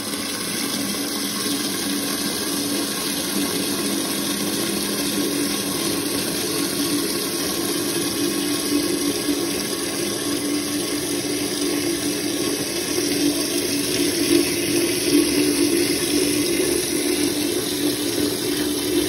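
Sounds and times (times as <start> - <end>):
water rushing into toilet tank: 0.0 - 19.0.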